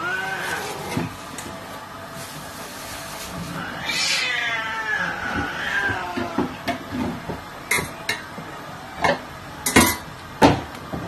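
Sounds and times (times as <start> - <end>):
cat meowing: 0.0 - 1.1, 3.5 - 6.7.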